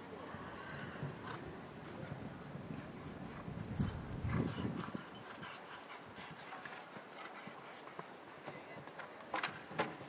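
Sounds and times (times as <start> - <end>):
outdoor background hiss: 0.0 - 10.0
horse hoofbeats on sand: 0.8 - 10.0.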